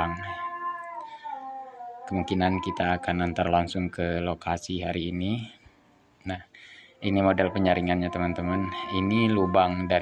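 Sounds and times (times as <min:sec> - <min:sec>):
high-pitched animal call: 0:00.0 - 0:03.6, 0:07.0 - 0:10.0.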